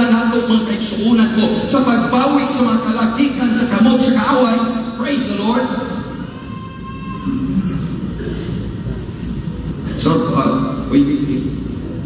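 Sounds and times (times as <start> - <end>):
low rumble in a large hall: 0.0 - 12.0.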